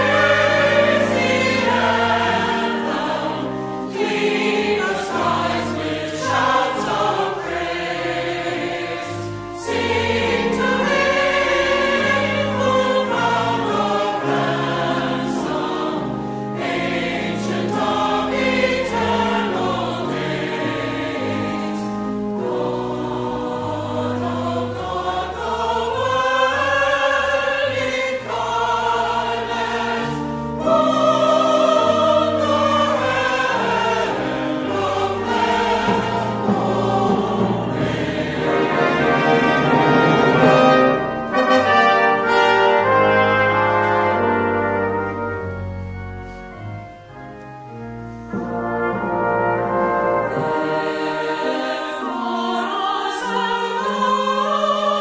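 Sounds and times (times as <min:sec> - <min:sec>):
sustained low accompaniment: 0:00.0 - 0:51.8
church choir singing: 0:00.0 - 0:55.0.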